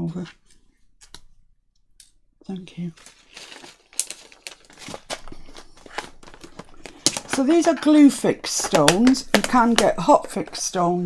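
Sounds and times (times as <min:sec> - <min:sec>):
plastic packet rustling: 0:02.7 - 0:10.8
plastic clicks and taps on box: 0:05.9 - 0:10.6.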